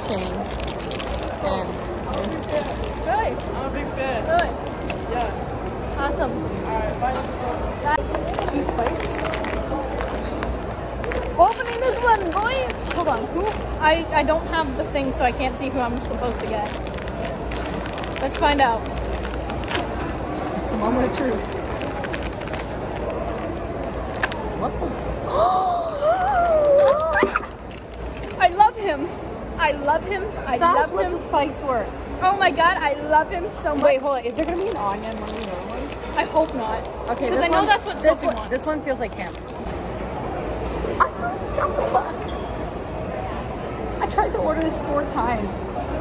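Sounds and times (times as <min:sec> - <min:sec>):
plastic packet crinkling: 0:00.0 - 0:03.5, 0:08.2 - 0:13.8, 0:15.7 - 0:20.3, 0:20.9 - 0:24.5, 0:26.6 - 0:28.4, 0:33.8 - 0:39.6
background hubbub: 0:00.0 - 0:46.0.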